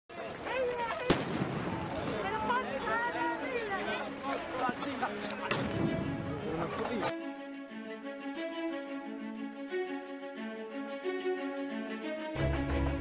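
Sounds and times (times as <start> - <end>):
voices: 0.1 - 7.1.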